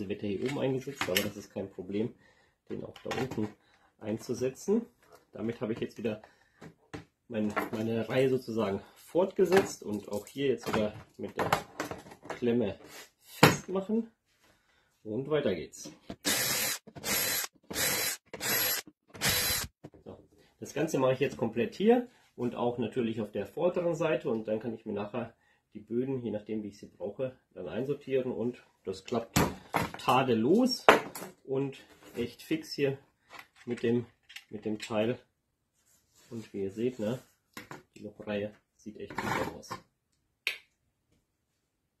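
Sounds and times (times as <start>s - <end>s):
cordless drill boring holes: 16.2s - 19.8s.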